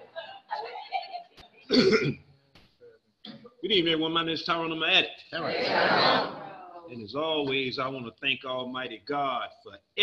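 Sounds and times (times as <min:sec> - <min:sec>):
man clearing his throat: 0:01.7 - 0:02.3.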